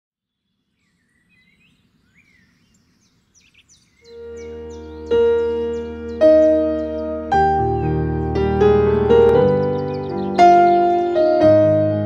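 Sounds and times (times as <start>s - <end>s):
small birds chirping: 0.3s - 12.0s.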